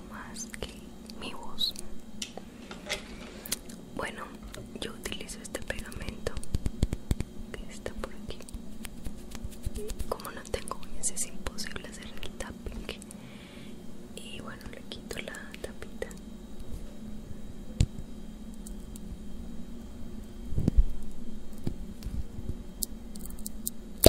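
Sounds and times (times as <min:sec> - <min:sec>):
soft whispering: 0:00.0 - 0:01.9, 0:04.0 - 0:06.5, 0:07.5 - 0:08.5, 0:09.8 - 0:13.1, 0:14.2 - 0:16.2.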